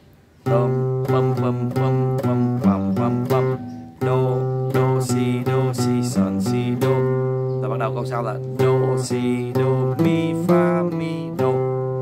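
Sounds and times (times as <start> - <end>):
fingerstyle classical guitar: 0.4 - 12.0.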